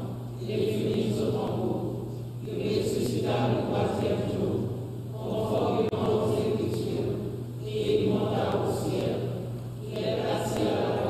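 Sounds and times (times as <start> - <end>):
group singing in church: 0.0 - 11.0
steady low hum: 0.0 - 11.0.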